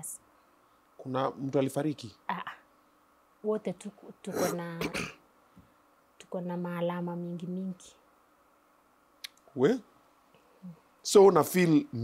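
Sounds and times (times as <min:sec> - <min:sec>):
woman clearing her throat: 0:04.3 - 0:05.2.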